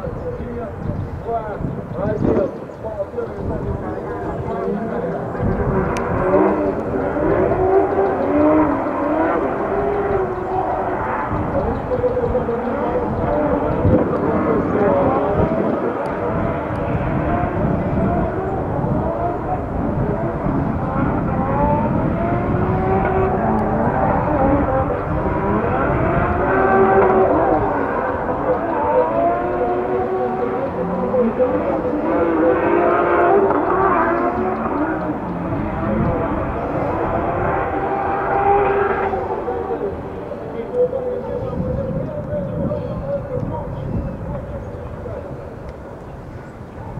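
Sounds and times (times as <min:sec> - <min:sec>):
car engines revving hard: 0:00.3 - 0:46.9.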